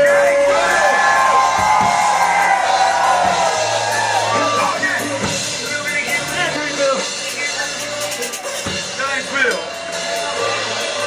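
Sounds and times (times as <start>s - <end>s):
crowd cheering and shouting: 0.0s - 7.2s, 8.2s - 11.0s
live concert music: 0.0s - 11.0s.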